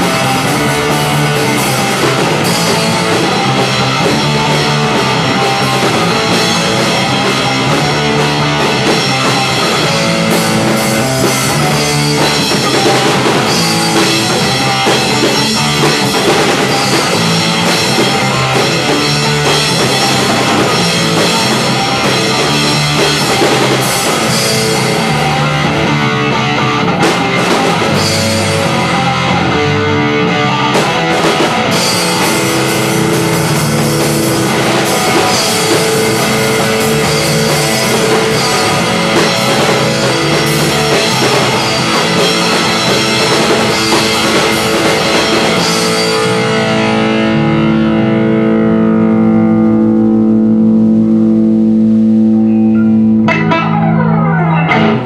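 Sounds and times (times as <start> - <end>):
rock band jamming: 0.0 - 55.0.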